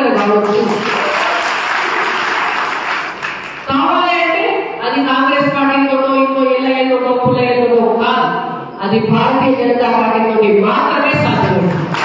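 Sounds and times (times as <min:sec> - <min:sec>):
audience applauding: 0:00.2 - 0:03.7, 0:11.7 - 0:12.0.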